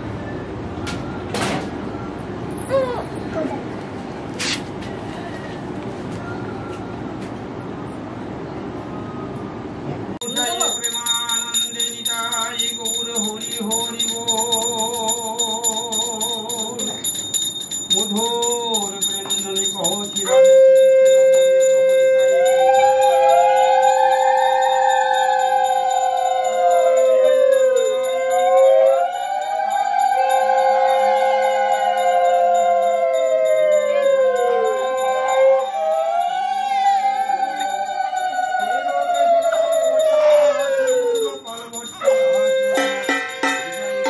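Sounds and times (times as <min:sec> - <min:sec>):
hand bell ringing rapidly: 0:10.2 - 0:36.2, 0:37.0 - 0:44.0
wavering voices: 0:17.9 - 0:44.0
conch shell blown: 0:20.1 - 0:40.0, 0:42.0 - 0:44.0.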